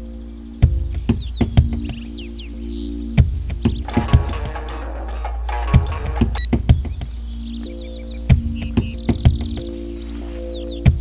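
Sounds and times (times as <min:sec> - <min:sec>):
percussion hits: 0:03.2 - 0:07.4
held low notes: 0:03.2 - 0:09.9.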